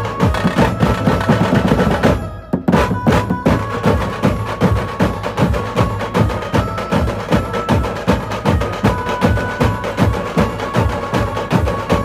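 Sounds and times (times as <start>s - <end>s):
drums beating fast rhythm: 0.0s - 12.0s.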